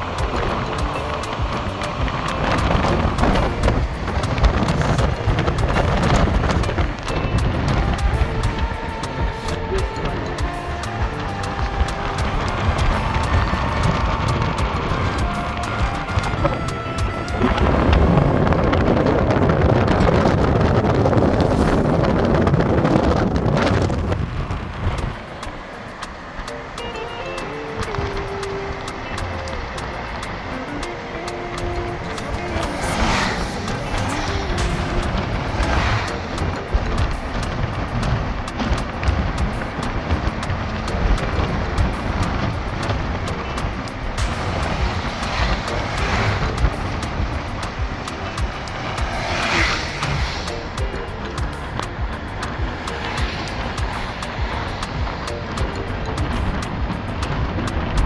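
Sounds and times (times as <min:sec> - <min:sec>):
car driving on paved road: 0:00.0 - 0:58.0
music: 0:00.0 - 0:58.0
wind noise through open window: 0:00.0 - 0:58.0
brief loud whooshes: 0:32.0 - 0:36.4, 0:48.4 - 0:50.5.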